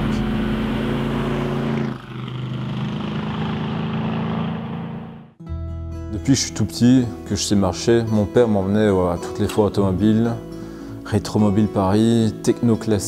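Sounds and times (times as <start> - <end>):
car engine running: 0.0 - 5.4
guitar music: 5.4 - 13.0.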